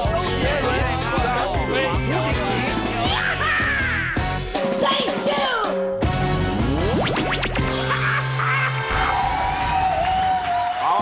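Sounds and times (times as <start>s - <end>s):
tv theme jingle: 4.2s - 9.0s.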